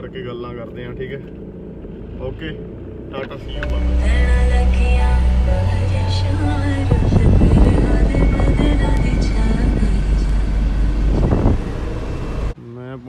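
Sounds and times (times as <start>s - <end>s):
engine and road rumble: 0.0s - 13.0s
music playing: 3.4s - 11.6s.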